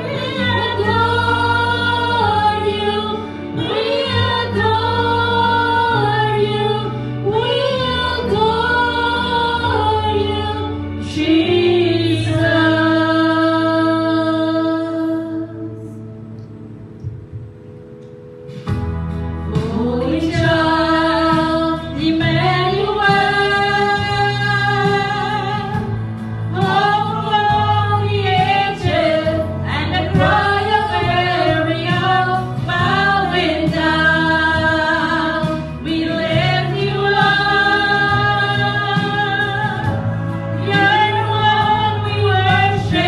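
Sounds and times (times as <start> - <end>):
group singing worship song: 0.0 - 16.0, 18.5 - 43.0
sustained keyboard chords: 0.0 - 43.0.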